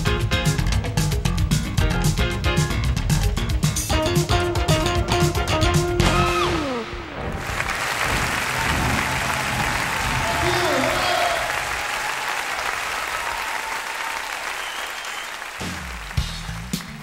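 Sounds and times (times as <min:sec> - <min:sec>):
drum hit: 0:05.6 - 0:10.3
audience applauding: 0:06.4 - 0:17.0.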